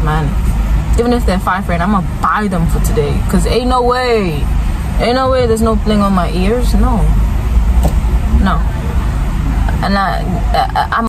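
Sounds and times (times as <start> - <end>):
low rumble inside car: 0.0 - 11.0.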